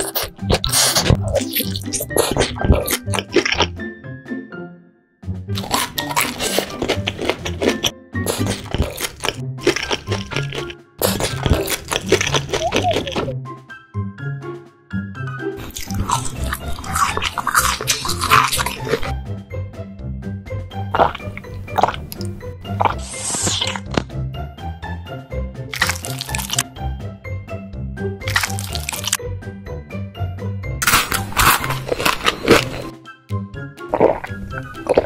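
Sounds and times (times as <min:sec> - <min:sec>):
crunchy bites into crispy food: 0:00.0 - 0:03.7, 0:05.6 - 0:13.3, 0:15.6 - 0:19.2, 0:21.0 - 0:24.1, 0:25.7 - 0:26.6, 0:28.3 - 0:29.2, 0:30.8 - 0:32.9, 0:33.9 - 0:35.0
squeeze bottle squirt: 0:00.0 - 0:03.7, 0:05.6 - 0:13.3, 0:21.0 - 0:24.0, 0:25.7 - 0:26.6, 0:28.3 - 0:29.2, 0:33.9 - 0:35.0
background music: 0:00.0 - 0:35.0.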